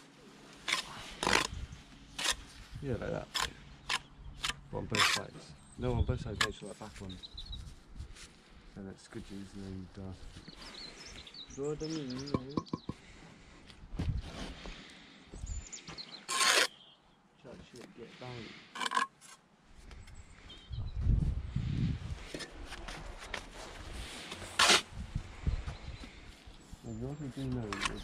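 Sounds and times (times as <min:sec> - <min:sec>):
trowel scraping mortar: 0:00.6 - 0:01.6, 0:02.2 - 0:02.5, 0:03.2 - 0:05.4, 0:16.3 - 0:16.8, 0:18.8 - 0:19.4, 0:24.5 - 0:24.8, 0:27.6 - 0:28.0.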